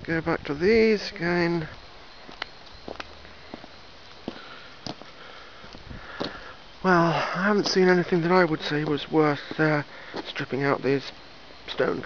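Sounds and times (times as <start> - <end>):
faint background noise: 0.0 - 12.0
soft footsteps on stone: 2.2 - 6.5, 7.6 - 10.4.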